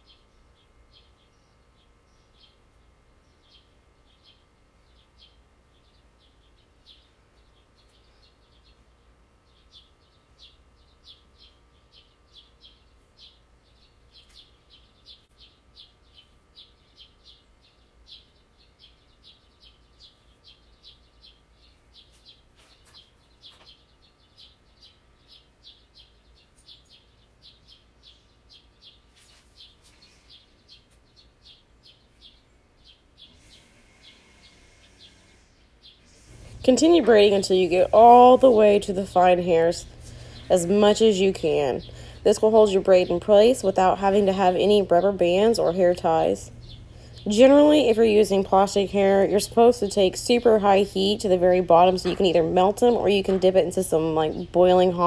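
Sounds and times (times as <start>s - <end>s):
bird chirping: 0.0s - 55.0s.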